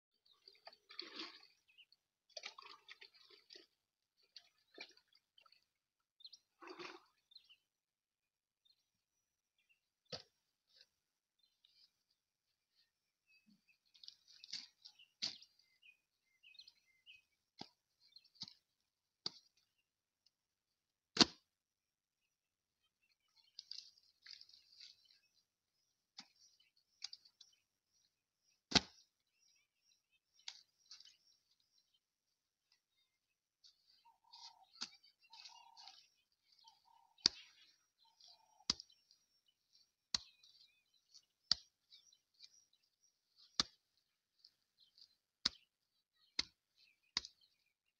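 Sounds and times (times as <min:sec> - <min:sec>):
mud slapping by hand: 0:00.4 - 0:05.6, 0:06.3 - 0:07.6, 0:10.0 - 0:12.0, 0:12.7 - 0:19.8, 0:21.1 - 0:21.6, 0:23.1 - 0:47.9
faint bird chirps: 0:32.7 - 0:43.7.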